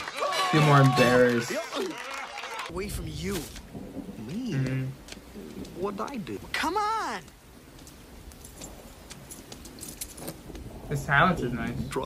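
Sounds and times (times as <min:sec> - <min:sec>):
steady rain: 0:00.0 - 0:12.0
faint voice: 0:04.4 - 0:05.0
high metallic clicks and jingles: 0:08.4 - 0:10.4.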